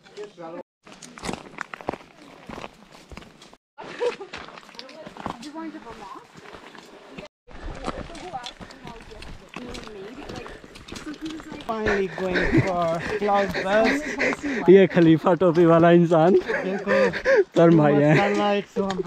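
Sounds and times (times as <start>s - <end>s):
footsteps on gravel: 0.9s - 15.8s
indistinct talking: 7.9s - 19.0s.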